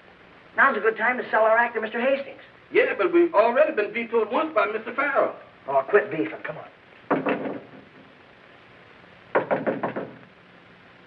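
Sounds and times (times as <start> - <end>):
knuckles knocking on door: 7.1 - 8.0, 9.4 - 10.2.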